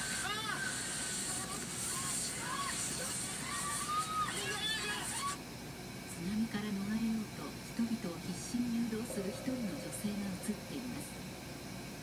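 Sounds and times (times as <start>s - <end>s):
high-pitched shouting voices on television: 0.0s - 5.4s.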